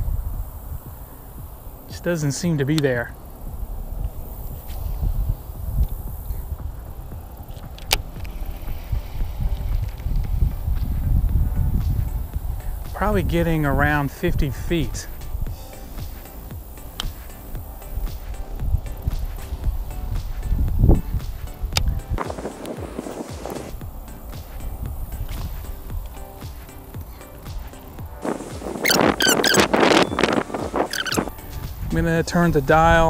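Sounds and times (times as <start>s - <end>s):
wind buffeting microphone: 0.0s - 33.0s
fishing reel whirring and clicking: 3.3s - 14.1s, 28.8s - 30.1s, 30.8s - 31.4s.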